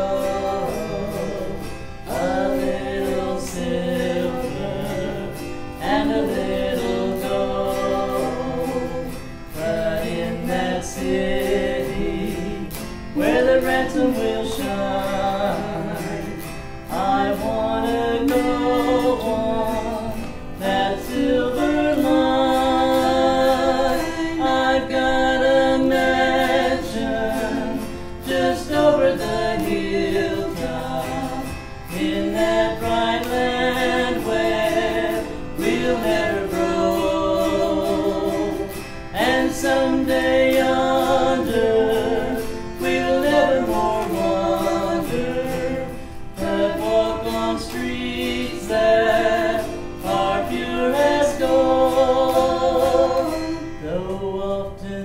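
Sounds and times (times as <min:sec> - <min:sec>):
strummed autoharp: 0:00.0 - 0:55.0
women singing together: 0:00.0 - 0:55.0.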